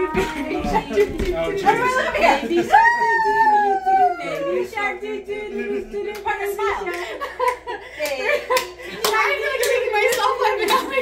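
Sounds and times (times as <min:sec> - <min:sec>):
adult voices: 0:00.0 - 0:11.0
people clapping in rhythm: 0:00.1 - 0:01.9, 0:06.1 - 0:11.0.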